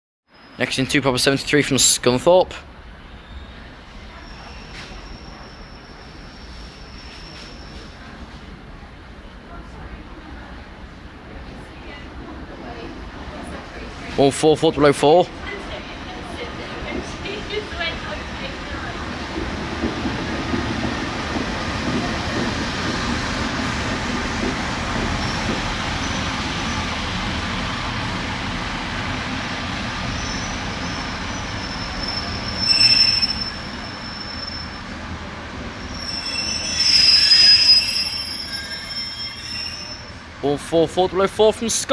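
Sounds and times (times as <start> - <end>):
diesel train engine and rail rumble: 0.4 - 41.9
high-pitched squeals: 30.1 - 35.0, 35.8 - 40.3.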